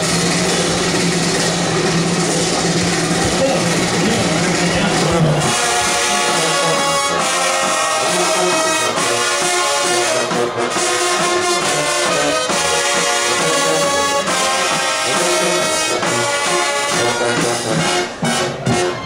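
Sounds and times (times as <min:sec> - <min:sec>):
marching band brass chords: 0:00.0 - 0:19.0.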